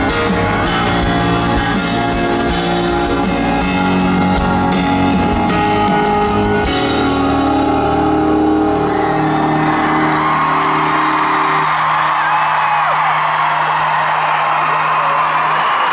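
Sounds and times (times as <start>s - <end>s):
live band holding final chord: 0.0s - 12.2s
crowd cheering and whooping: 6.3s - 15.9s.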